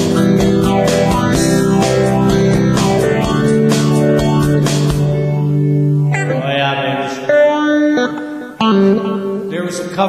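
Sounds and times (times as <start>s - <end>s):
live band music: 0.0s - 9.9s
electric guitar ringing notes: 0.0s - 10.0s.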